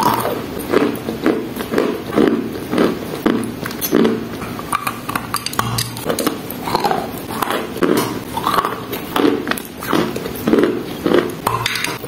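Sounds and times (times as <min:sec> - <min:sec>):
chewing chalk crunches: 0:00.0 - 0:12.0
wet mouth sounds: 0:00.0 - 0:12.0.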